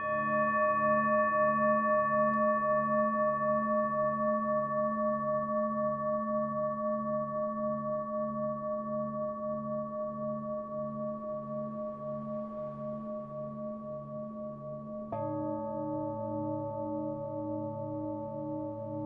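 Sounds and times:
singing bowl ringing: 0.0 - 19.0.

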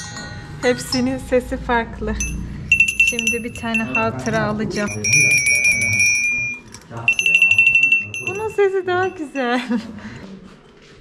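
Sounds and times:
small handbells ringing: 2.1 - 9.8.

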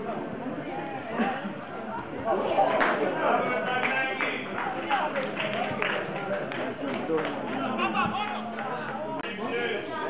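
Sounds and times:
men talking and calling out: 1.0 - 10.0.

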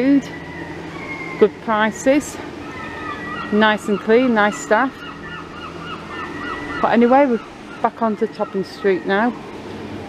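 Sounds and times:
street background: 0.0 - 10.0
bird calling in short calls: 2.6 - 9.2.

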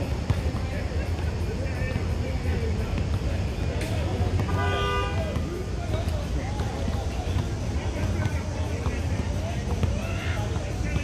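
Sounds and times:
street traffic rumble: 0.0 - 11.0
car horn toot: 4.5 - 5.3.

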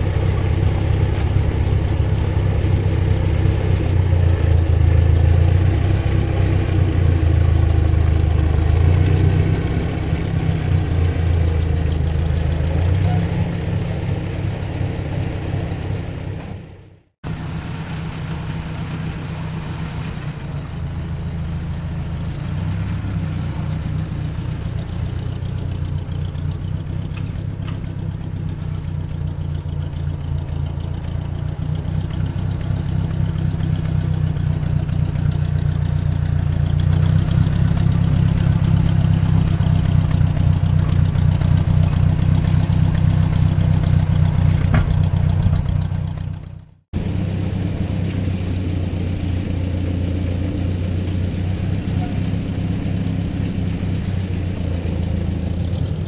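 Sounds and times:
tractor engine idling: 0.0 - 56.0.

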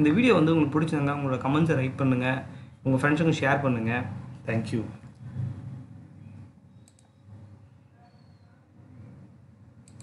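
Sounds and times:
faint room noise: 0.0 - 10.0
computer mouse clicks: 6.8 - 7.2.

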